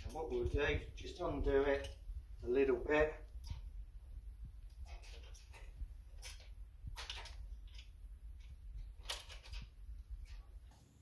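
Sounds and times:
steady low hum: 0.0s - 11.0s
light clicks and scrapes: 4.6s - 10.8s.

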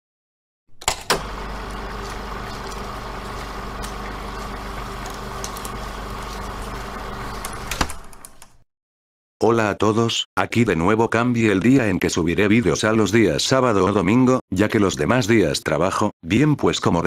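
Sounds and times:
machine running with low hum: 1.2s - 7.7s.

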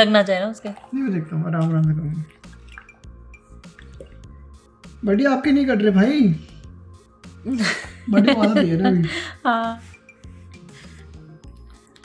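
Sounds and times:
quiet background music: 0.0s - 12.0s
man's voice: 8.1s - 9.2s.

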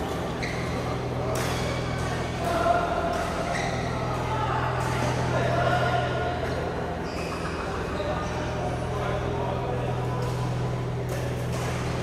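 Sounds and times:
distant voices: 0.0s - 12.0s
steady low hum: 0.0s - 12.0s.

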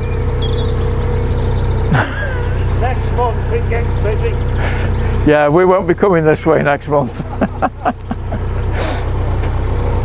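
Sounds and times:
bird chirps: 0.0s - 6.6s, 7.2s - 8.4s, 9.4s - 10.0s
constant tone: 0.0s - 10.0s
engine idling hum: 0.0s - 10.0s.

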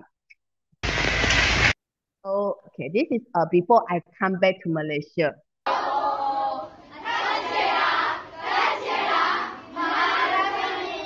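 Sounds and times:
burst of rushing noise: 0.8s - 1.8s.

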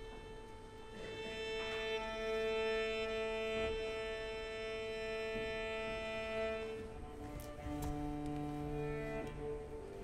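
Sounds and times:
string quartet holding bowed note: 0.0s - 10.0s.

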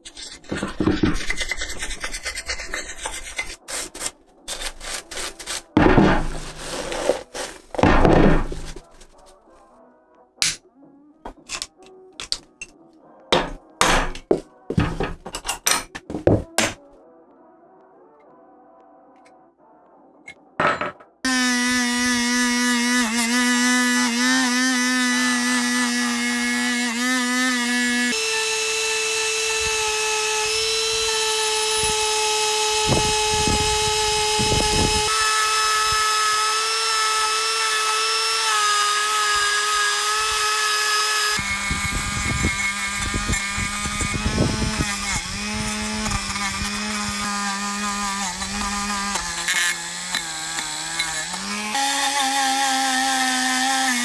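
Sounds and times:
wire brush scraping metal: 0.0s - 7.8s
rotary tool motor whine: 39.6s - 51.8s.

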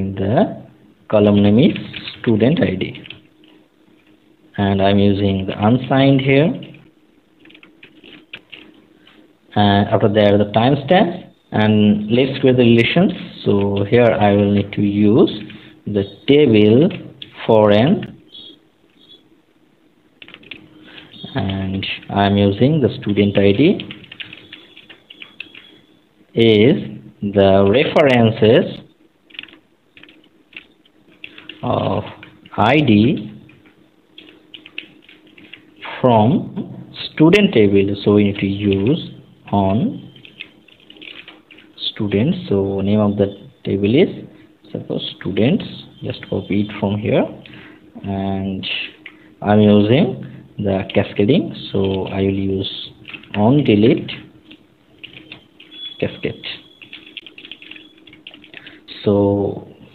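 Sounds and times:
computer keyboard typing: 1.2s - 4.2s, 5.6s - 9.2s, 12.0s - 15.8s, 16.9s - 17.4s, 20.2s - 26.0s, 27.6s - 35.9s, 37.0s - 42.6s, 45.1s - 47.7s, 48.7s - 59.1s
typing on computer keyboard: 2.9s - 4.1s, 6.6s - 9.2s, 20.2s - 21.3s, 23.6s - 26.0s, 29.3s - 31.6s, 33.0s - 35.8s, 40.0s - 41.8s, 52.9s - 58.9s.

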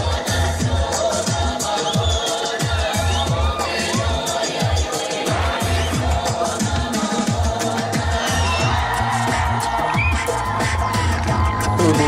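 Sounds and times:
upbeat dance music: 0.0s - 12.0s.

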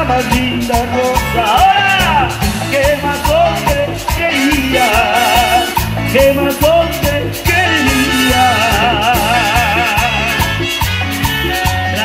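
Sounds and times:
latin dance band playing: 0.0s - 12.0s.

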